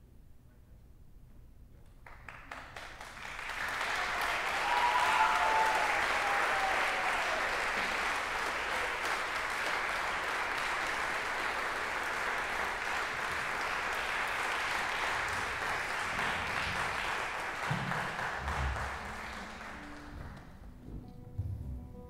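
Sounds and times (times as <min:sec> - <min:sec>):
audience applauding: 0:02.0 - 0:20.7
audience cheer: 0:03.4 - 0:09.9.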